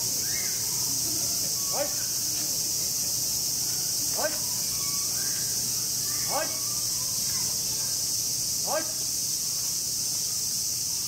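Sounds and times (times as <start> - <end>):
cicadas chorus: 0.0 - 11.0
short rising cicada calls: 0.0 - 11.0.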